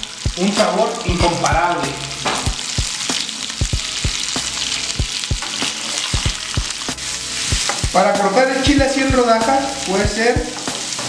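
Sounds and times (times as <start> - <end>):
frying sizzle with pops and crackles: 0.0 - 11.0.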